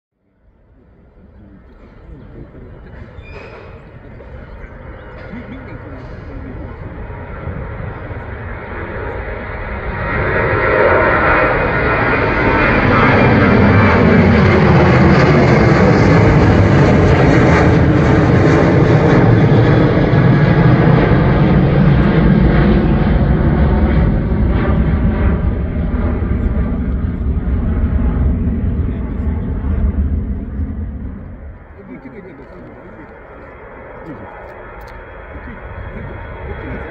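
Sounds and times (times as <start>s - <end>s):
jet engines roaring overhead: 0.2s - 36.9s.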